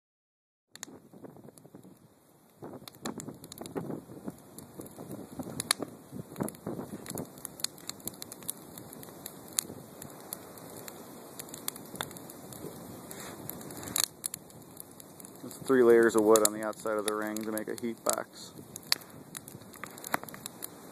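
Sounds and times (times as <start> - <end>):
wood fire crackling and popping: 0.7 - 20.9.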